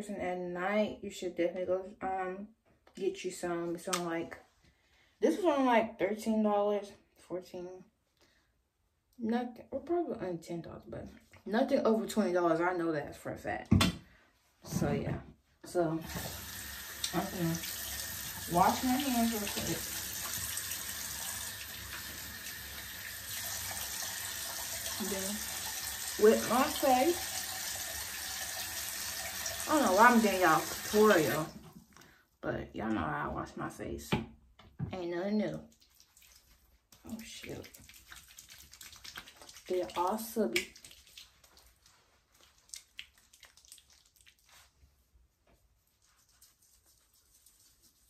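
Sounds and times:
sink tap running: 16.0 - 31.6
wet squelches of hands on skin: 35.6 - 48.0.

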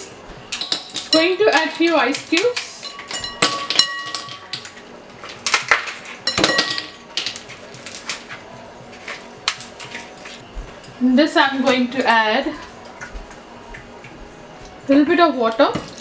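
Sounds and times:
glass bowl ringing: 2.8 - 4.6, 6.2 - 7.2.

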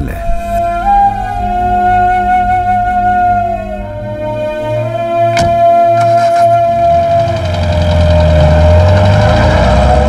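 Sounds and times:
high held tone: 0.0 - 9.0
car engine rumbling: 0.0 - 10.0.

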